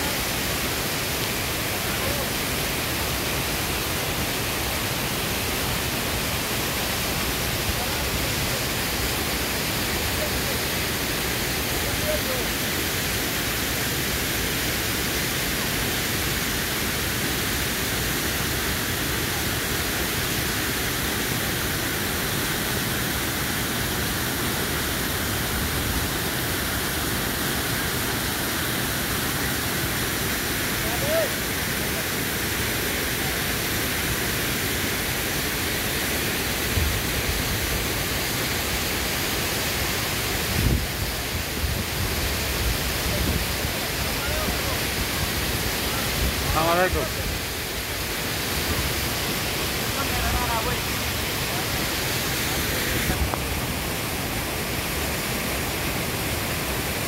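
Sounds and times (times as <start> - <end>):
river rushing over rocks: 0.0 - 57.0.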